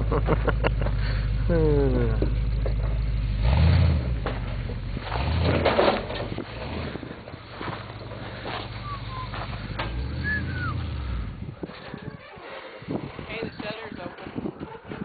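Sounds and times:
off-road engine revving: 0.0s - 14.0s.

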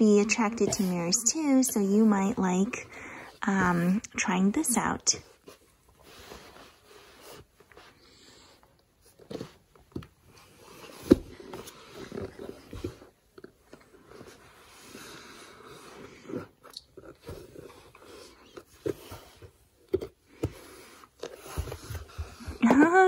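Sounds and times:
baby crawling on foam mat: 0.0s - 4.1s, 17.2s - 23.0s.

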